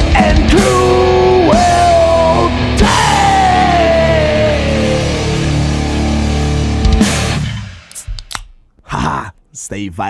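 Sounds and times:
heavy metal band playing: 0:00.0 - 0:07.7.

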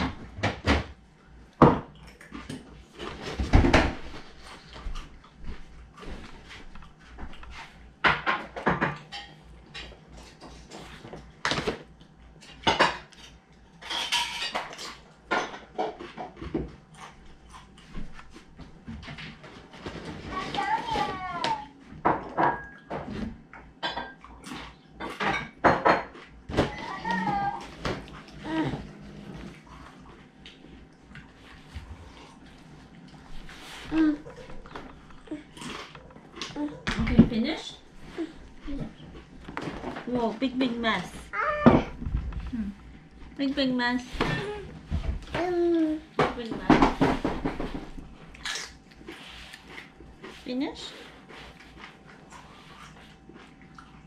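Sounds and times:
toddler squealing and babbling: 0:41.4 - 0:41.8.

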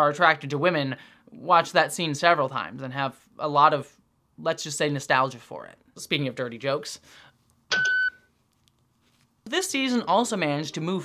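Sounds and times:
short electronic beep: 0:07.7 - 0:08.2.

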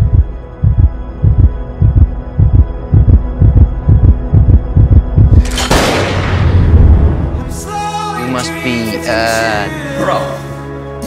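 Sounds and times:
heartbeat thumps: 0:00.0 - 0:05.4
droning music tone: 0:00.0 - 0:11.0.

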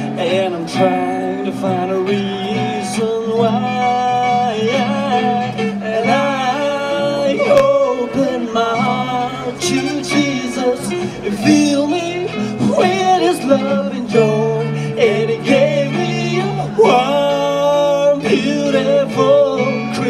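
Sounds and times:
guitar accompaniment: 0:00.0 - 0:20.0
person singing long gliding notes: 0:00.0 - 0:20.0.

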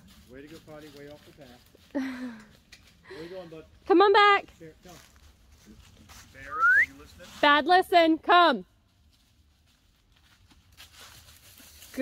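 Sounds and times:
dry leaves rustling and crackling: 0:00.0 - 0:07.8, 0:08.8 - 0:12.0.

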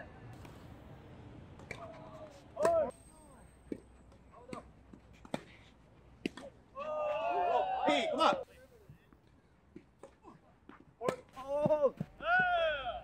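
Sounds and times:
player shouting: 0:06.8 - 0:08.4.

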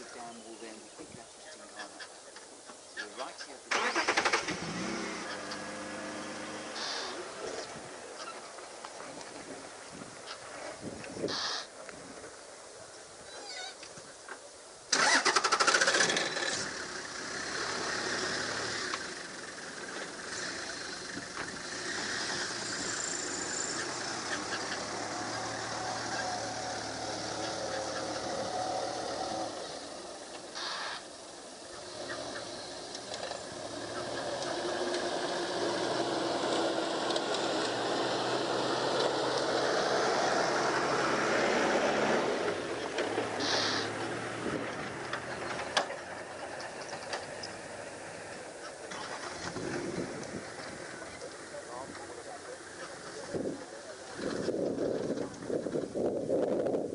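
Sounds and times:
vehicle engine starting and running: 0:03.7 - 0:11.4, 0:14.9 - 0:56.9.

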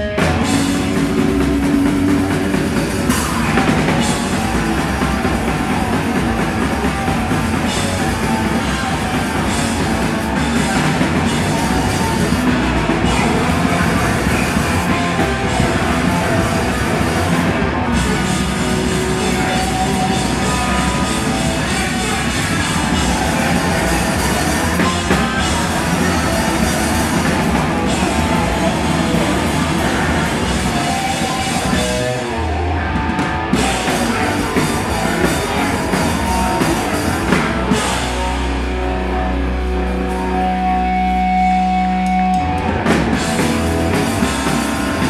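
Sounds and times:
distorted guitar and bass: 0:00.0 - 0:45.0
drums and cymbals: 0:00.0 - 0:45.0.

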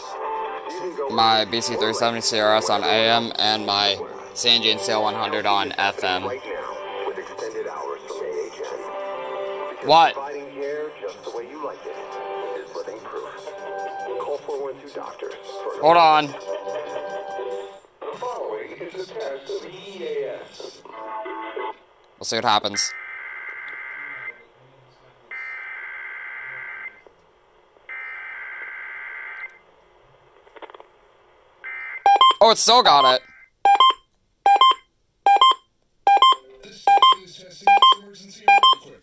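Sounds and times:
music on radio speaker: 0:00.0 - 0:21.8, 0:36.1 - 0:39.0
person talking on radio speaker: 0:01.0 - 0:08.8, 0:09.8 - 0:16.4, 0:22.2 - 0:23.0, 0:32.4 - 0:33.3, 0:36.4 - 0:39.0.

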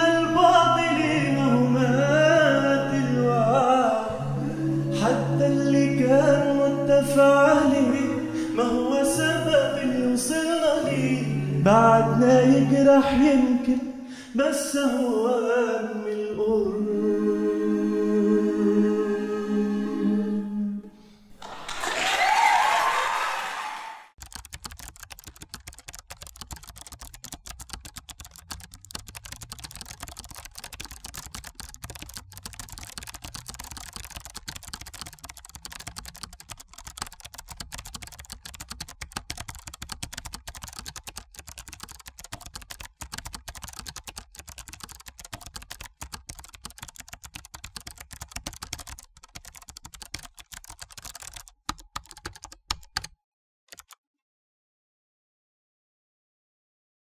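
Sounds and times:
keyboard typing clicks: 0:24.2 - 0:54.0.

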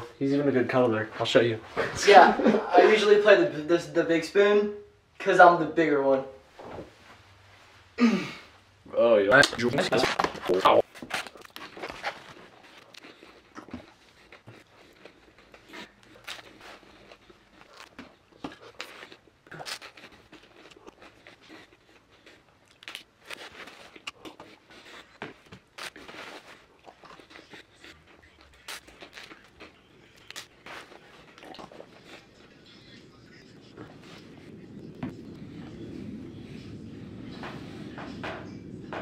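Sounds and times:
chewing and crunching: 0:09.8 - 0:38.2.

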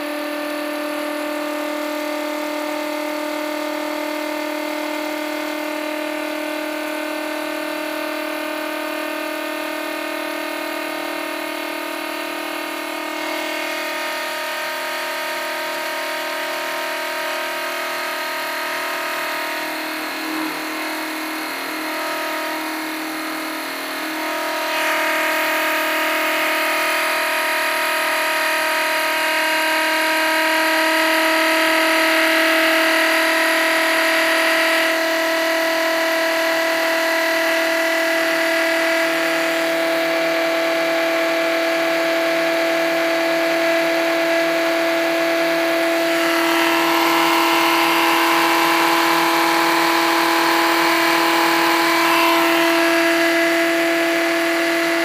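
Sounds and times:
electric motor whine: 0:00.0 - 0:55.0.

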